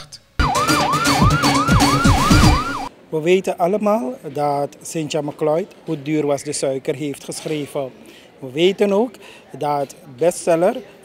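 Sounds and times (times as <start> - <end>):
beat-like thuds: 0.4 - 2.9
siren-like sweeping wail: 0.4 - 2.9.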